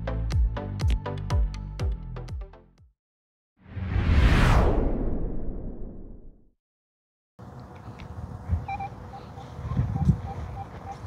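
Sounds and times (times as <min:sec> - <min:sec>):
low rumble: 0:03.7 - 0:06.5
short electronic beeps: 0:08.7 - 0:09.3.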